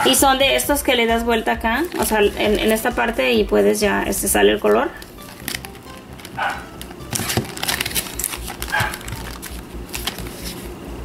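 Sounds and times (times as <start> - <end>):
plastic packaging crackling: 1.8 - 3.0, 4.6 - 10.8.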